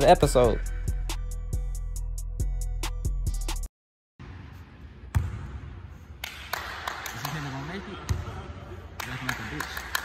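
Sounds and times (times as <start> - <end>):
large gym room noise: 4.2 - 10.0.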